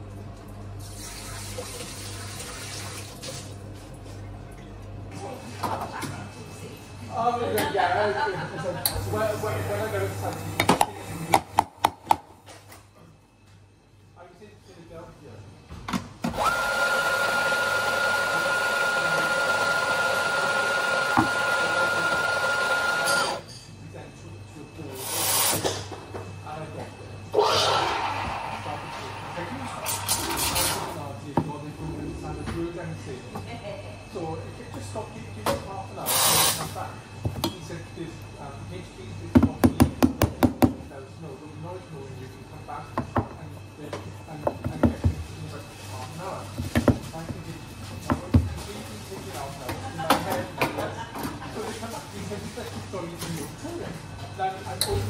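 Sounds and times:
electric coffee grinder whining: 16.3s - 23.4s, 27.4s - 29.1s
portafilter knocking on counter: 39.3s - 40.8s.

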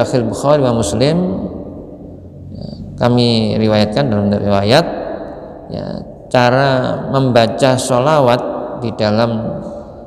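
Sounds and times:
man reading aloud: 0.0s - 1.7s, 2.4s - 5.0s, 5.6s - 9.8s.

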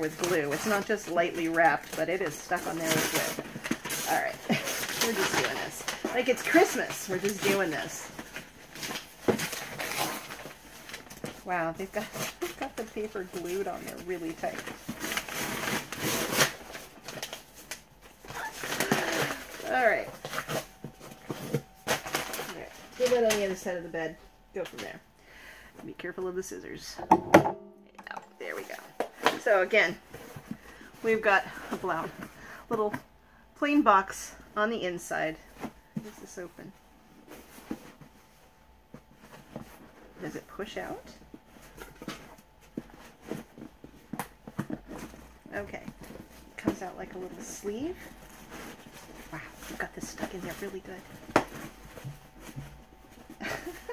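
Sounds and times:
wrapping paper ripping and crinkling: 0.0s - 23.7s.

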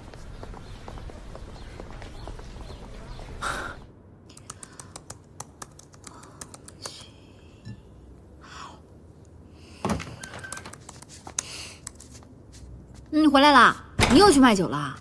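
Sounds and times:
low steady background hum: 0.0s - 15.0s
laptop keyboard typing: 4.3s - 7.1s, 10.1s - 12.2s.

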